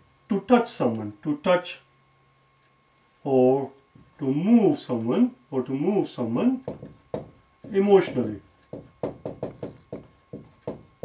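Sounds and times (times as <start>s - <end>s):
marker tapping on whiteboard: 6.6s - 11.0s.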